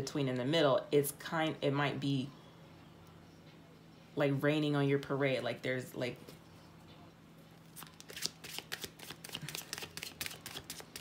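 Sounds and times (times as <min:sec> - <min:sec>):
cards being shuffled by hand: 0:07.7 - 0:11.0.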